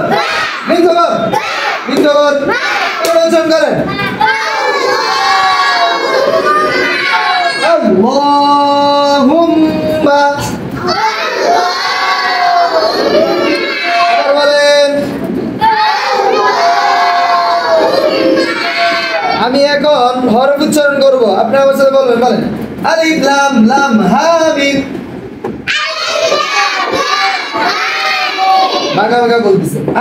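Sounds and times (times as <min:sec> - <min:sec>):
children chanting in unison: 0:00.0 - 0:00.7, 0:01.3 - 0:01.9, 0:04.2 - 0:07.6, 0:10.8 - 0:14.3, 0:15.6 - 0:19.4, 0:25.7 - 0:29.0.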